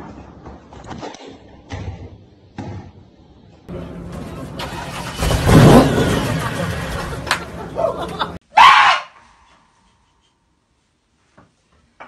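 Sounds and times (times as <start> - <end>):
car engine starting and revving: 3.7 - 8.3.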